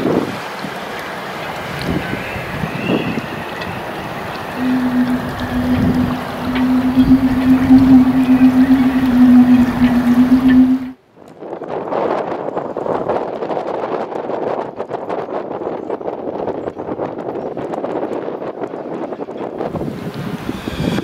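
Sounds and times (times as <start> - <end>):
wind on microphone: 1.6 - 21.0
steady low hum: 3.8 - 11.0.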